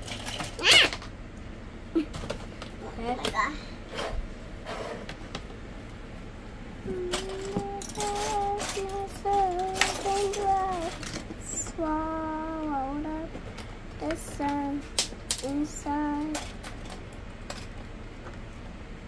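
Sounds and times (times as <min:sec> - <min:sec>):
child humming a tune: 0:06.8 - 0:13.3
plastic bricks clicking and clattering: 0:07.1 - 0:11.3, 0:15.0 - 0:17.7.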